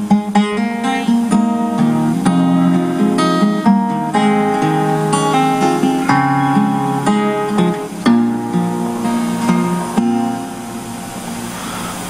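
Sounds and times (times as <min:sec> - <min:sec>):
acoustic guitar chord ringing: 0:00.0 - 0:12.0.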